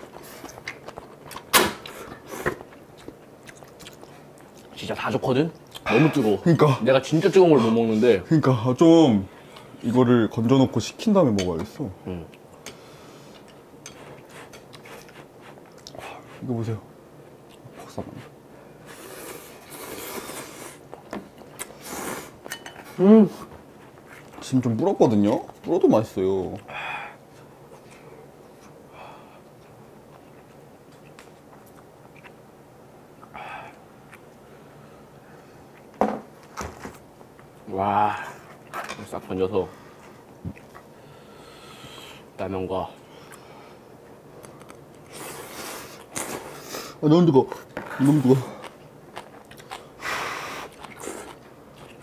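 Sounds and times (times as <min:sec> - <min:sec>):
man talking: 0:04.8 - 0:12.3, 0:47.0 - 0:48.6.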